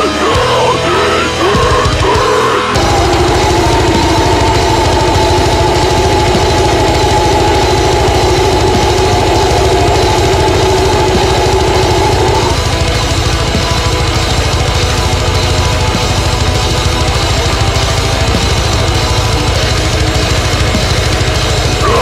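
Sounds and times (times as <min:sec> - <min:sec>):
held distorted guitar chord: 0:00.0 - 0:22.0.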